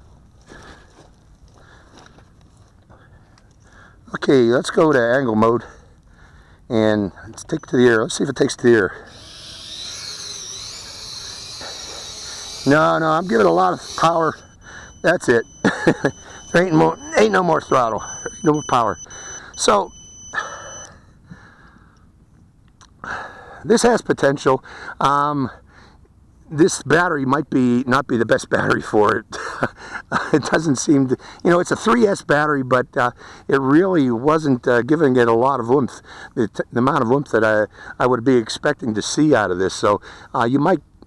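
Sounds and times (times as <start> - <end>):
high electronic beeper tone: 9.0 - 20.9.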